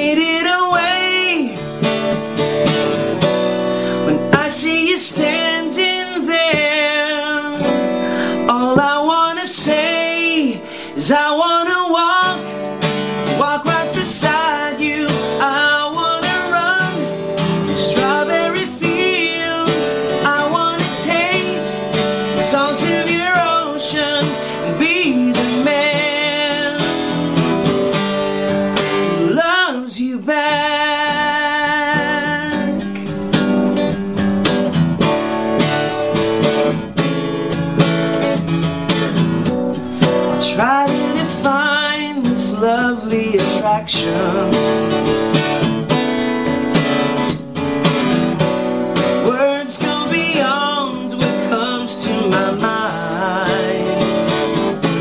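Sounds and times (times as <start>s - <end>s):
man singing: 0.0s - 1.9s, 3.6s - 27.8s, 28.7s - 33.2s, 39.8s - 46.0s, 49.0s - 55.0s
acoustic guitar strummed: 0.0s - 55.0s.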